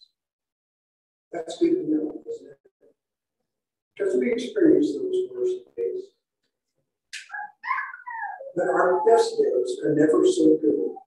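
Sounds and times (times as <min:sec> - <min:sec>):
high-pitched vocal cry: 0:07.2 - 0:09.2.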